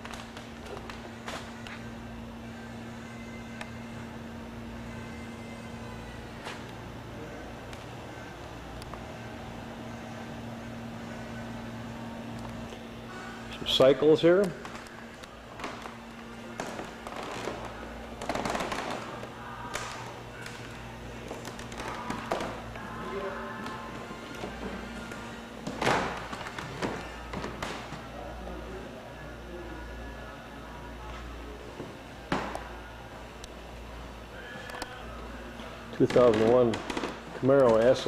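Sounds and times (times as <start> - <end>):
faint background music: 0.0 - 38.0
steady low hum: 0.0 - 38.0
distant voices: 4.8 - 38.0.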